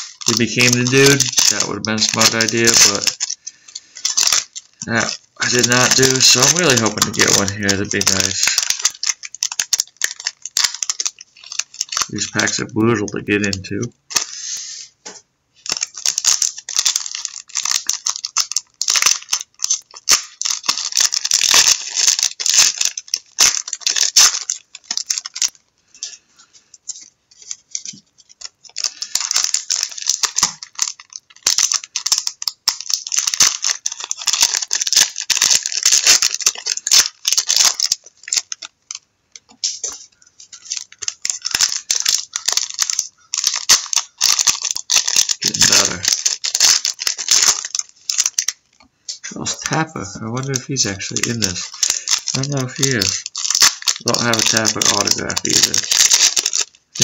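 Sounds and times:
card pack wrappers tearing and crinkling: 0:00.0 - 0:14.8, 0:15.6 - 0:26.2, 0:26.8 - 0:57.0.

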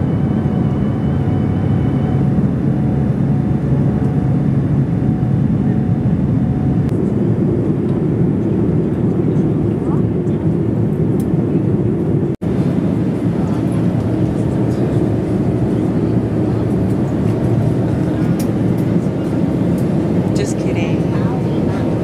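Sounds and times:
jet engine and airflow noise in cabin: 0:00.0 - 0:22.0.

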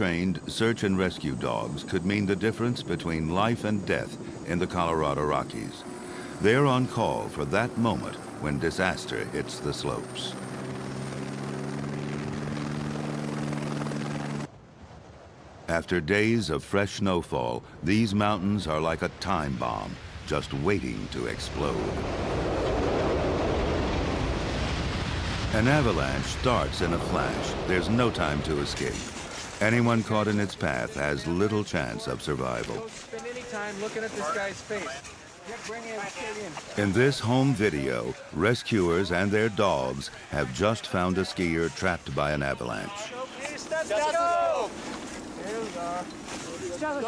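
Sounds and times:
avalanche rumbling: 0:18.9 - 0:33.0.

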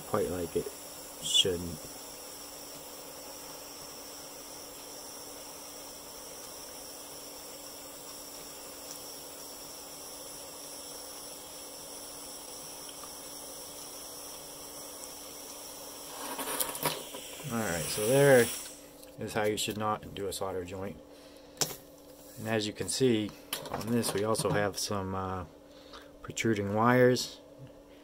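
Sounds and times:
soldering iron hissing: 0:00.0 - 0:20.9
faint high whine: 0:00.0 - 0:21.4.

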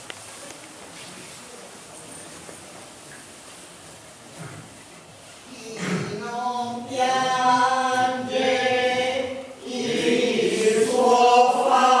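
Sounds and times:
group singing slow chant: 0:06.4 - 0:12.0.

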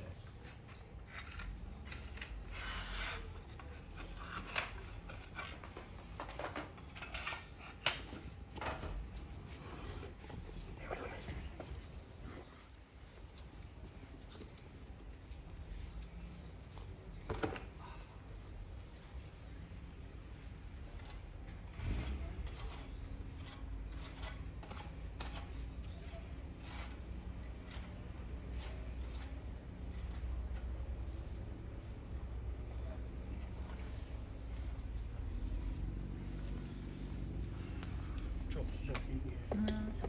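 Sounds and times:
faint voices: 0:10.2 - 0:12.4.

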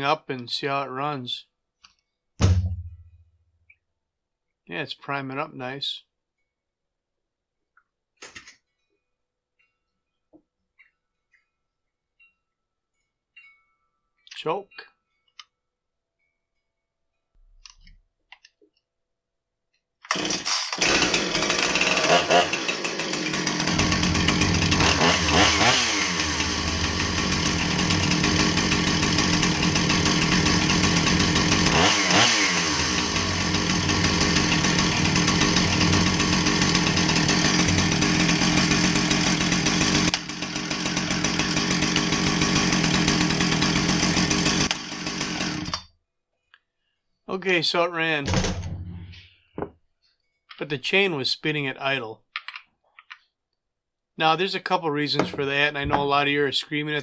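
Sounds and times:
chainsaw engine running: 0:20.1 - 0:45.8.

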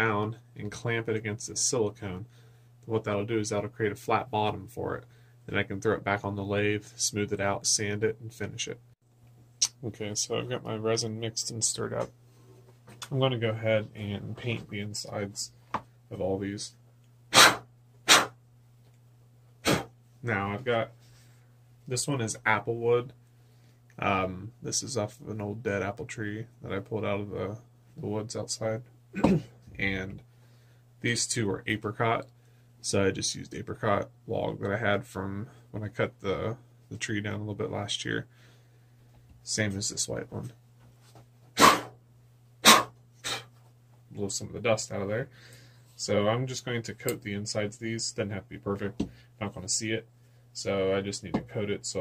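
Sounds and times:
faint low hum: 0:00.0 - 0:52.0.

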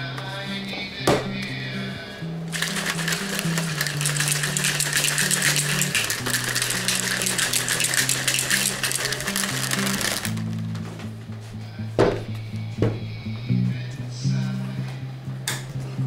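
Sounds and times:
background music with bass: 0:00.0 - 0:16.0
shaker cup rattling and sloshing: 0:02.5 - 0:10.6.

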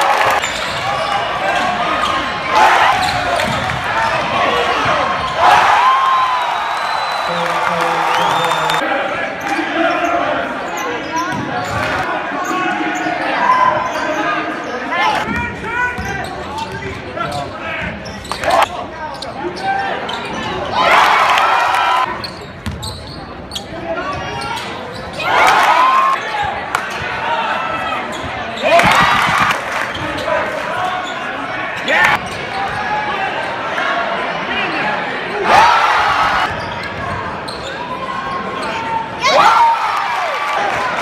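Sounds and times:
murmur of crowd voices: 0:00.0 - 0:41.0.

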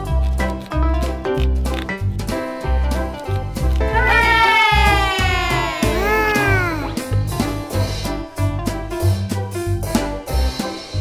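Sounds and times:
background music with steady beat: 0:01.0 - 0:11.0
meow-like cry: 0:04.4 - 0:06.9.

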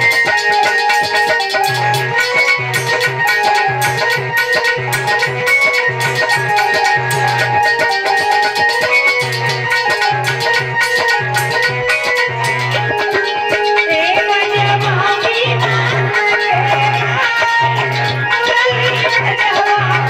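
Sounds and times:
fast percussion beat: 0:00.0 - 0:20.0
harmonium holding notes: 0:00.0 - 0:20.0.

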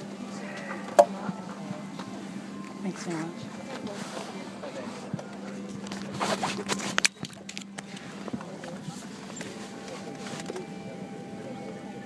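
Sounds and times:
low airliner cabin hum: 0:00.0 - 0:12.0
camera rubbing against fabric: 0:06.0 - 0:07.0.

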